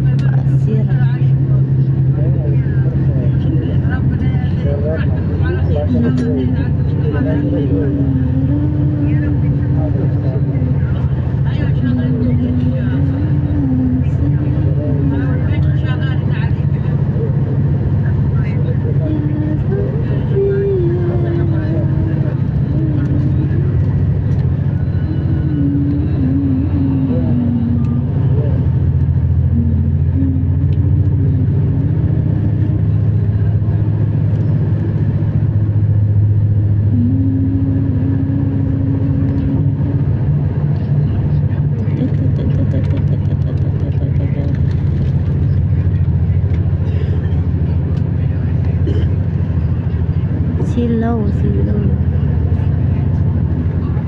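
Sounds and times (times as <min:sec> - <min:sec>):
vehicle road and engine rumble: 0:00.0 - 0:54.0.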